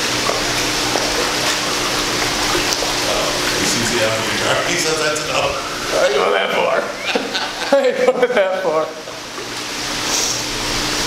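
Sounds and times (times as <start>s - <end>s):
water splashing from swimming: 0.0s - 7.7s, 8.8s - 11.0s.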